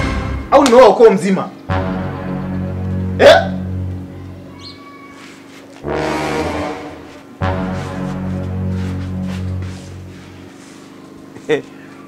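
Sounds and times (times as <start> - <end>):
music with low sustained notes: 1.6 - 4.5, 5.8 - 11.4
loud sound falling in pitch: 5.8 - 9.6.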